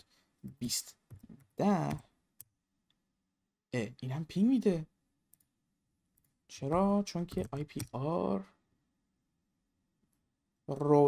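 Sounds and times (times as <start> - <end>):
computer keyboard keystroke: 6.7 - 8.0.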